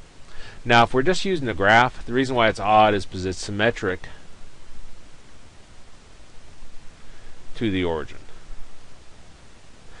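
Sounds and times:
steady low hiss: 0.0s - 10.0s.

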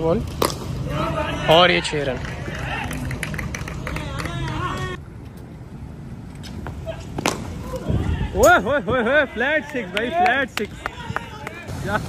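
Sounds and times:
players' voices: 0.0s - 5.1s, 6.5s - 12.0s
cricket bat striking ball: 0.3s - 0.7s.

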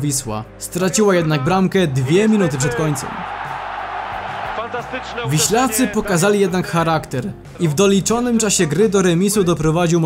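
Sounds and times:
stadium crowd cheering: 1.9s - 7.1s.

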